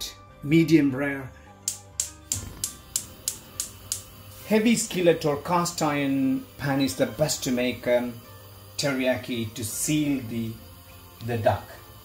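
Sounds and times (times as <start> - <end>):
background music: 0.0 - 12.0
gas igniter clicking: 1.6 - 12.0.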